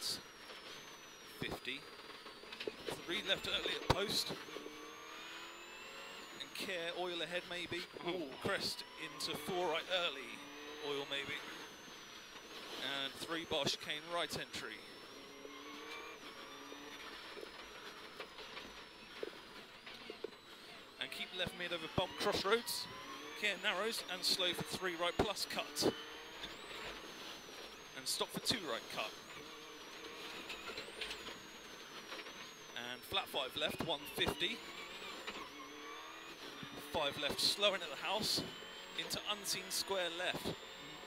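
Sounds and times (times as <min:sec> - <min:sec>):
car engine running at speed: 0:00.0 - 0:41.0.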